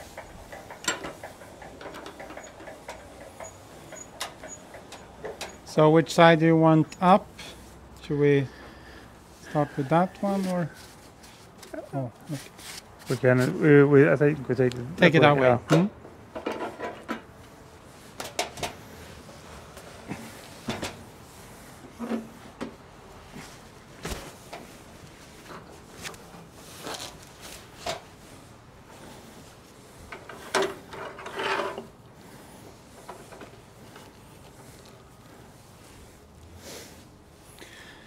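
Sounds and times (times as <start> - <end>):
timber scraping on metal table: 30.4 - 31.9.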